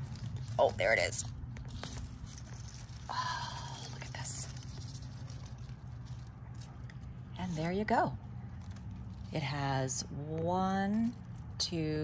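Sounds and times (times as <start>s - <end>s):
soil crumbling and rustling: 0.0s - 7.8s
low background hum: 0.0s - 12.0s.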